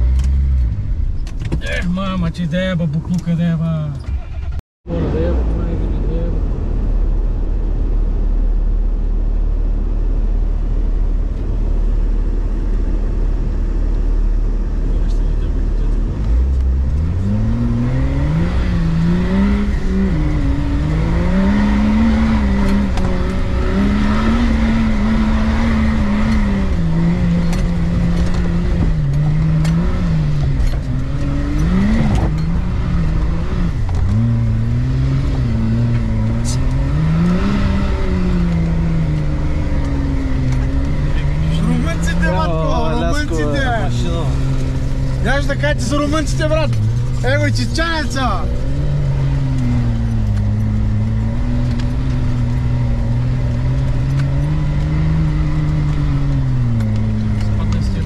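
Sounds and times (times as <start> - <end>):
off-road vehicle engine revving: 0.0 - 58.0.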